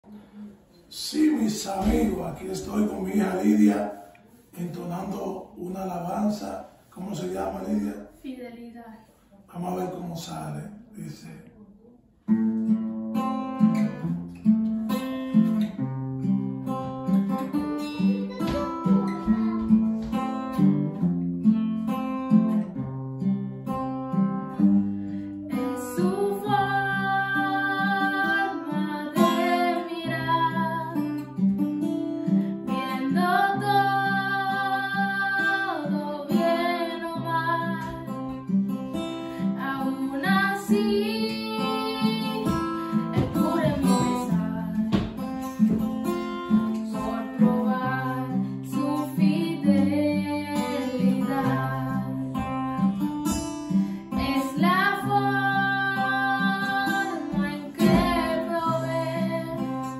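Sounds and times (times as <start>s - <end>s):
acoustic guitar strumming: 12.2s - 59.9s
girl singing: 17.5s - 20.2s, 25.4s - 31.3s, 32.7s - 38.4s, 39.6s - 45.2s, 46.5s - 52.8s, 54.1s - 59.9s.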